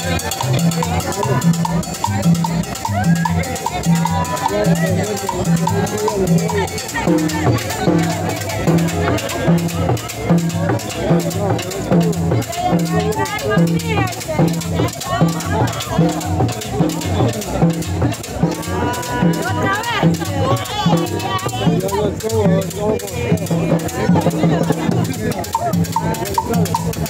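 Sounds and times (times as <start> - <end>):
crowd voices: 0.0 - 27.0
live dance band: 0.0 - 27.0.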